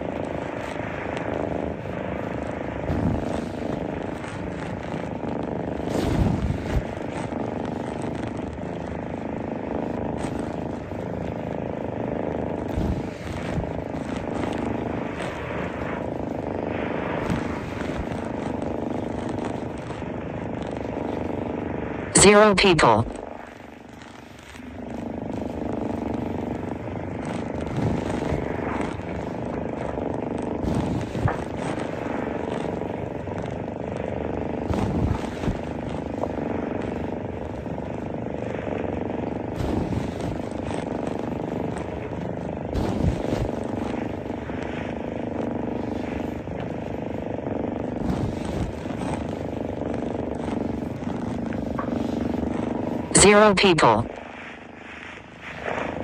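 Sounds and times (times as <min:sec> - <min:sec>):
low rumbling noise: 0:00.0 - 0:56.0.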